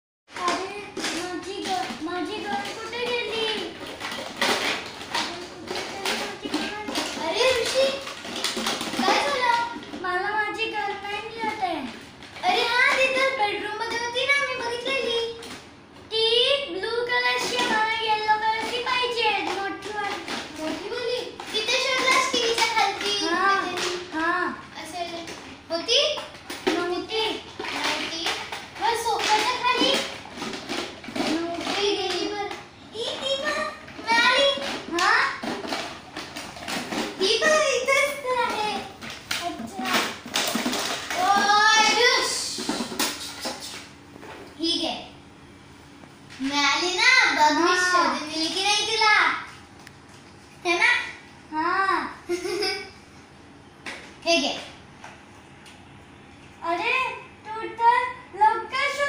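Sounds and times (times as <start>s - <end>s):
plastic toys clattering: 0.3s - 15.7s, 16.9s - 44.4s
children talking and calling: 0.3s - 45.2s, 46.2s - 49.8s, 50.5s - 53.1s, 56.5s - 59.0s.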